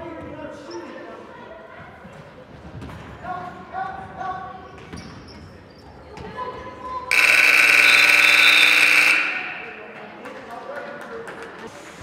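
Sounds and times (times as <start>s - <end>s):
scoreboard buzzer blaring: 7.1s - 10.0s.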